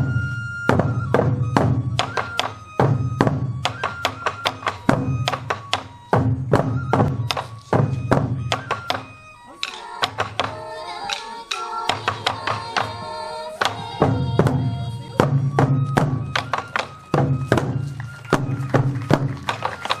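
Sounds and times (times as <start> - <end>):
flute melody: 0.0 - 20.0
taiko drums booming: 0.0 - 20.0
voices singing: 8.6 - 17.0
drumstick clicks: 9.6 - 12.9.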